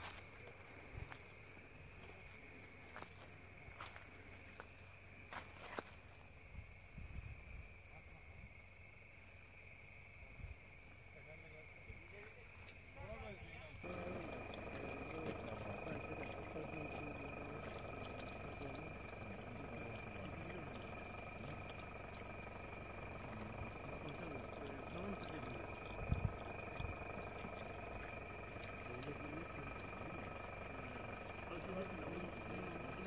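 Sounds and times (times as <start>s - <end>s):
high-pitched whine: 13.0s - 33.0s
people talking indistinctly: 13.0s - 33.0s.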